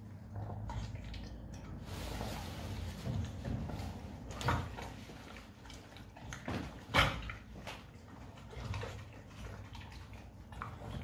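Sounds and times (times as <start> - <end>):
dog chewing food: 3.0 - 11.0.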